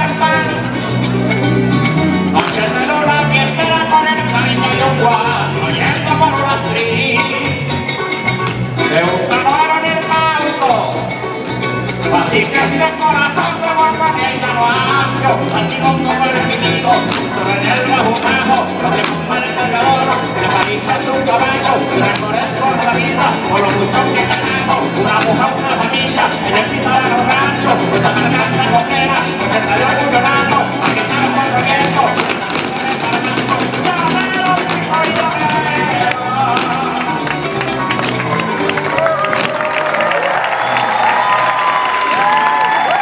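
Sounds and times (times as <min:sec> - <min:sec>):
plucked strings: 0:00.0 - 0:39.6
harp-led band playing: 0:00.0 - 0:43.0
maracas rhythm: 0:00.0 - 0:43.0.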